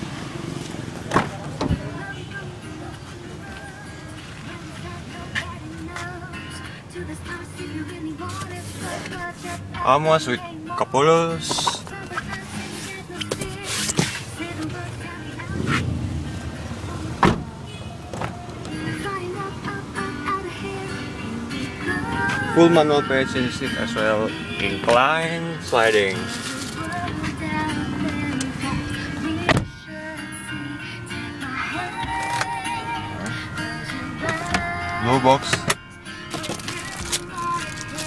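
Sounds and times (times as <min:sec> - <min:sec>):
background music: 0:00.0 - 0:38.0
car door shutting: 0:00.6 - 0:02.1, 0:15.4 - 0:16.2, 0:16.8 - 0:19.1, 0:26.6 - 0:29.8, 0:34.2 - 0:34.8
car door handle and latch clicks: 0:01.1 - 0:01.8, 0:17.2 - 0:17.5, 0:29.4 - 0:29.8, 0:34.2 - 0:34.7.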